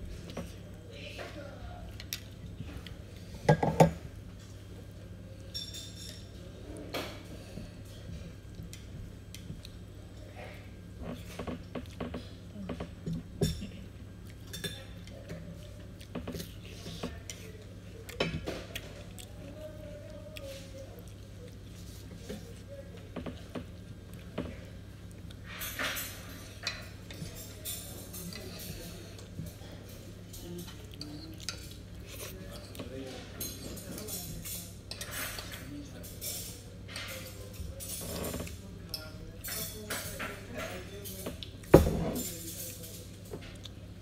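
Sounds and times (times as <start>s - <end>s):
person chewing: 17.9s - 19.6s.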